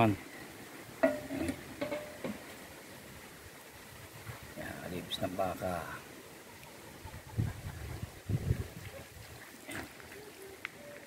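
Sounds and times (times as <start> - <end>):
quiet outdoor background: 0.0 - 11.0.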